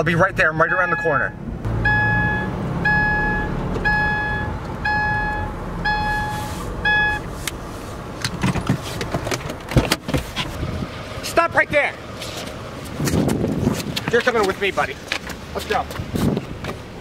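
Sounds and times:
low rumble of car: 0.0 - 17.0
car warning chime beeping: 0.5 - 7.3
car door knocks and scuffs: 8.3 - 10.6, 15.1 - 16.9.

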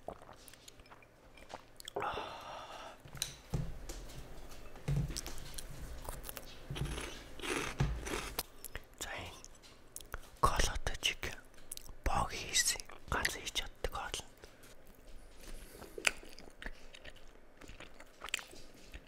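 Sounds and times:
wet biting and chewing: 15.7 - 19.0.

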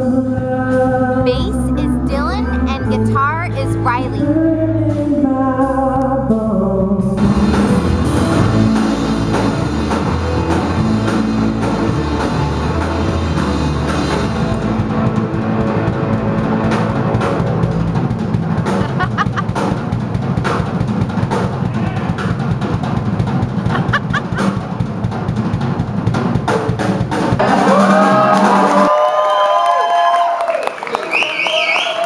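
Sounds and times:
rock drum kit playing: 6.9 - 28.9.

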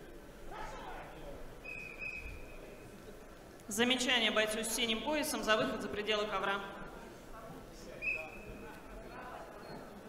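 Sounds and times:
crowd murmur: 0.0 - 3.6
referee's whistle blast: 8.0 - 8.5.

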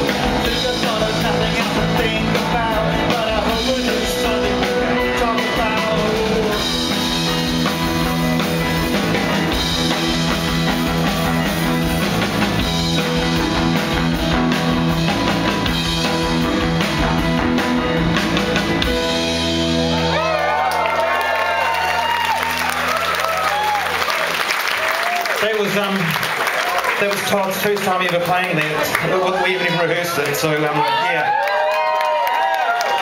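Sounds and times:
person singing: 0.0 - 7.0
rock band playing live: 0.0 - 31.8.

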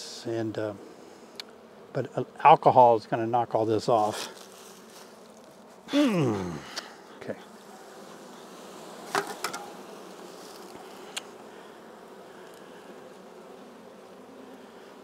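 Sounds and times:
honey bees buzzing: 0.0 - 15.0.

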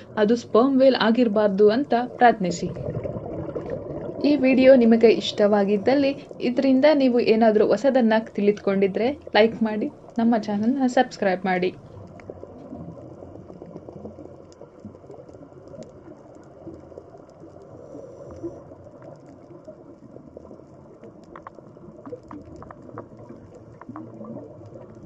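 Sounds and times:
muffled underwater rush: 0.0 - 25.0
small clicks and crackles: 11.8 - 25.0.

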